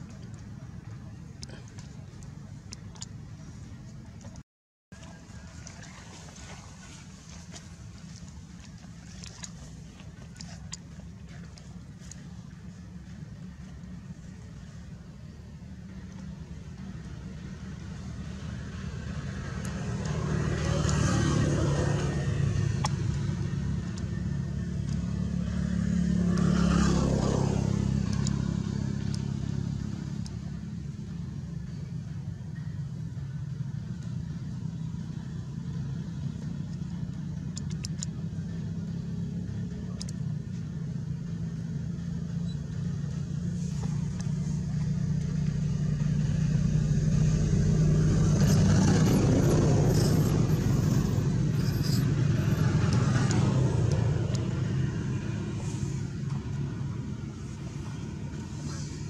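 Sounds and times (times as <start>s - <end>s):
vehicle engine running: 0.0s - 59.0s.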